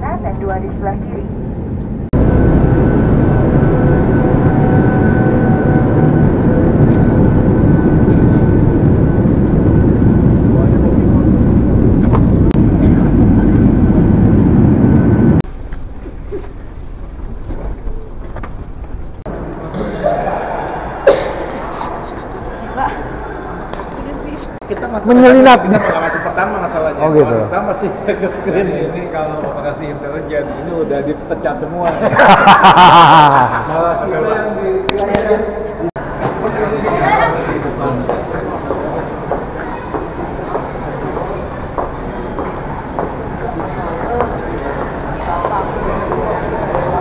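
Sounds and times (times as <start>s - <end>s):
crowd chatter: 19.3s - 31.8s, 33.7s - 47.0s.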